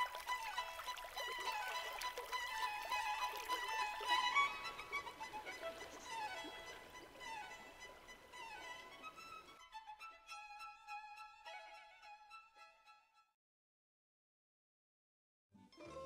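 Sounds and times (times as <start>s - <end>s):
violin melody: 0.0s - 13.4s, 15.6s - 16.0s.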